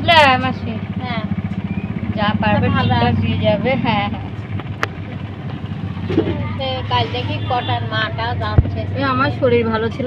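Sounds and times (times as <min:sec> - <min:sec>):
steady low hum with faint pulse: 0:00.0 - 0:10.0.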